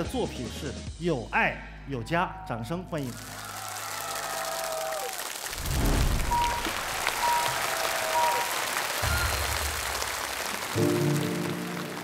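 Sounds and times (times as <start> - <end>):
audience applauding: 3.0 - 12.0
stage music: 5.6 - 12.0.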